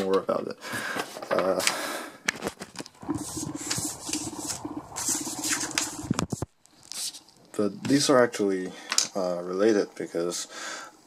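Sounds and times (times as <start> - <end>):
paper rustling and scraping on desk: 2.3 - 7.2.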